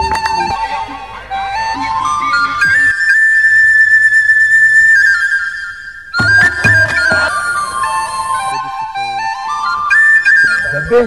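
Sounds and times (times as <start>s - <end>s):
flute-like wind melody: 0.0s - 11.0s.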